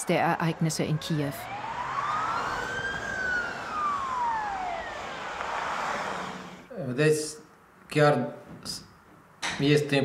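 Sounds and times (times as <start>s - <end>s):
emergency vehicle siren wailing: 0.0s - 6.7s
street noise hiss: 1.6s - 10.0s.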